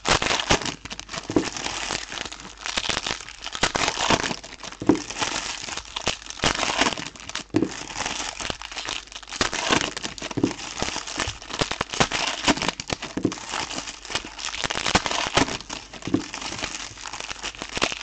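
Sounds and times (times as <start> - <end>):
foil wrappers crinkling and tearing: 0.0 - 18.0.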